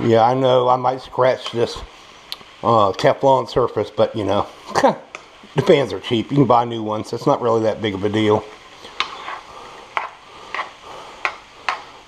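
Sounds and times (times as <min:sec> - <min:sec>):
metal spoon scraping frying pan: 0:08.8 - 0:11.9.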